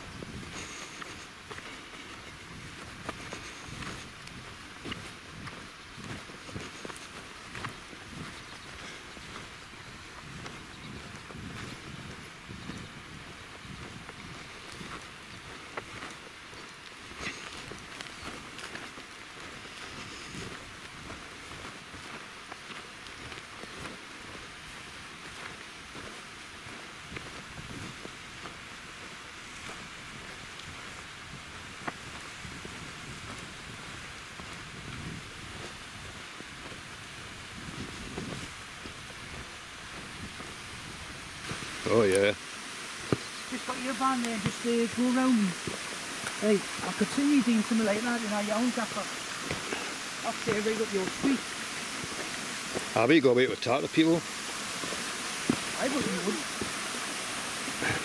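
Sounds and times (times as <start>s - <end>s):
wind buffeting microphone: 0.0s - 16.0s, 27.0s - 28.5s, 29.8s - 41.9s.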